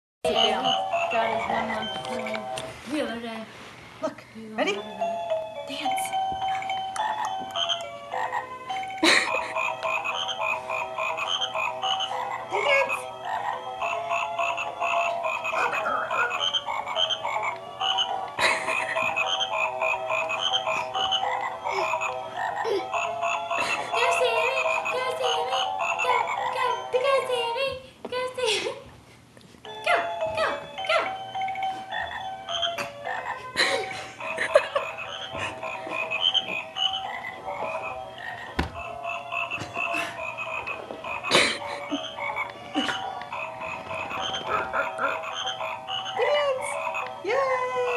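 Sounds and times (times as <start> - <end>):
toy playing croaking tune: 0.3 - 2.7, 6.1 - 26.9, 30.0 - 33.6, 34.2 - 47.4.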